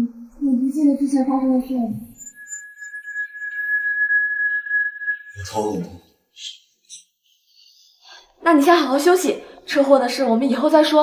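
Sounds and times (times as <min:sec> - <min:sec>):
high-pitched ringing tone: 0:01.1 - 0:07.2.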